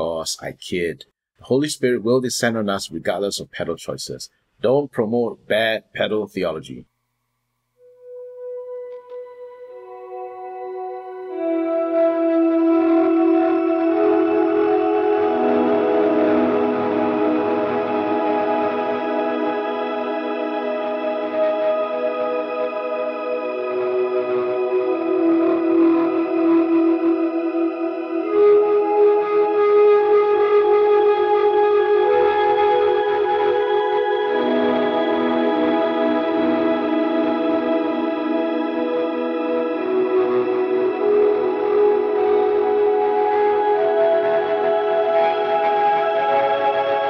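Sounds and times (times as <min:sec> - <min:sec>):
electric guitar ambient pad: 0:08.0 - 0:47.0.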